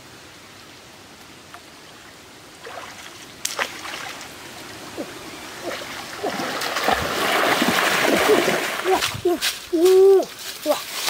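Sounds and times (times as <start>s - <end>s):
legs splashing through water: 2.6s - 11.0s
short voiced sounds: 8.3s - 10.9s.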